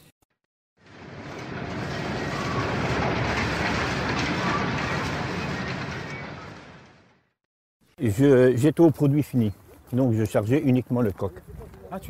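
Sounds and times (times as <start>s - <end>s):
mechanical rumble and clatter: 0.8s - 7.5s.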